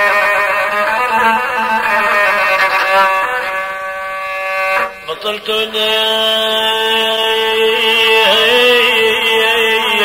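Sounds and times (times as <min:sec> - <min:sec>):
spike fiddle long held notes: 0:00.0 - 0:05.2.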